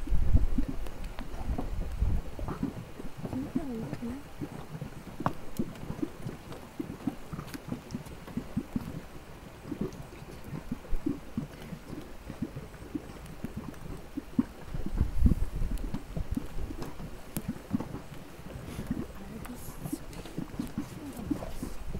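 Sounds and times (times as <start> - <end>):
mud bubbling and plopping: 0.0 - 21.9.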